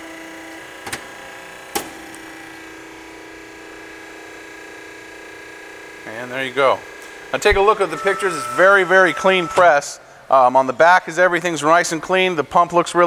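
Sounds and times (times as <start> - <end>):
hydraulic pump motor humming: 0.0 - 10.4.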